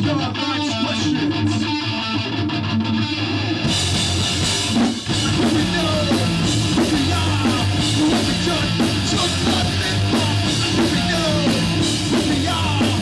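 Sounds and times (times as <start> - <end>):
bass guitar: 0.0 - 13.0
distorted electric guitar: 0.0 - 13.0
drum kit: 3.6 - 13.0.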